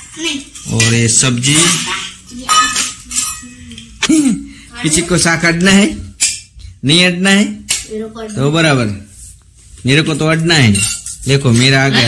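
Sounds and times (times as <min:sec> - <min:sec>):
steel dishes clinking: 0:00.4 - 0:03.8, 0:10.6 - 0:12.0.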